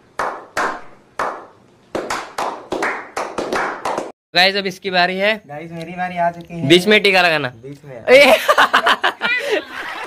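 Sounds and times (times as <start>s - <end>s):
group slow clapping: 0.1s - 4.2s.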